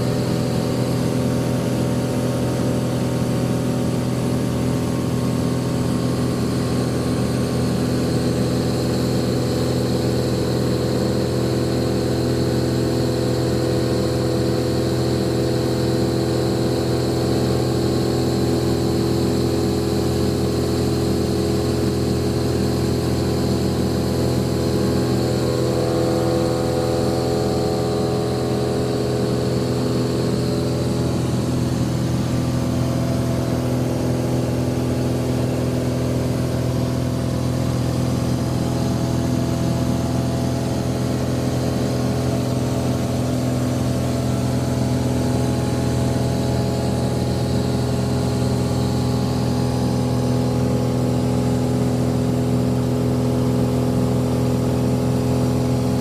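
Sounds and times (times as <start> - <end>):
light aircraft engine drone: 0.0 - 56.0.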